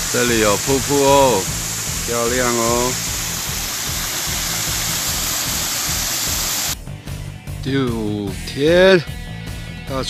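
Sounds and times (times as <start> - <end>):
waterfall rushing: 0.0 - 6.8
background music with low beat: 0.0 - 10.0.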